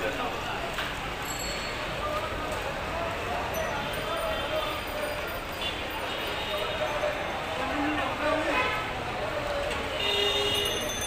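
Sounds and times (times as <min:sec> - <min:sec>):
busy street noise: 0:00.0 - 0:11.0.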